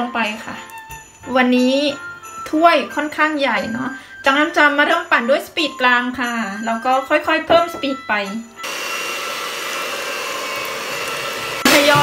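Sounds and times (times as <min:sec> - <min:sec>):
electric hand mixer whisking: 0:08.6 - 0:12.0.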